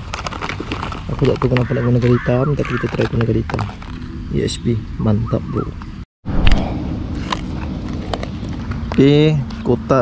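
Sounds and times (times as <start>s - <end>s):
plastic box clicking and crackling: 0.0s - 4.0s
low background rumble: 4.2s - 9.5s.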